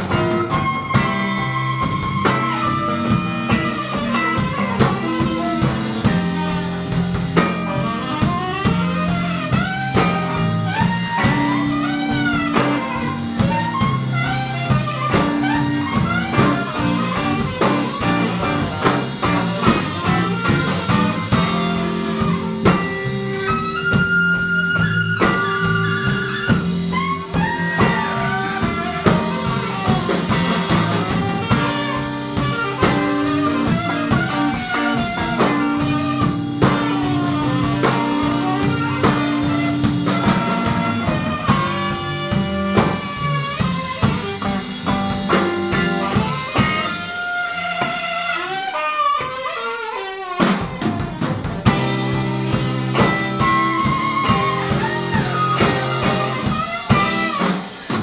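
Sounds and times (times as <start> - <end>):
electric bass line: 0.0 - 49.5, 50.4 - 58.0
alto saxophone: 0.0 - 58.0
drum kit beat: 0.0 - 58.0
electric guitar: 0.0 - 58.0.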